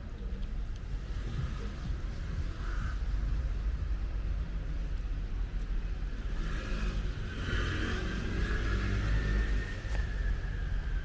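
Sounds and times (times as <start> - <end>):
steady low rumble: 0.0 - 7.2
vehicle passing: 6.1 - 11.0.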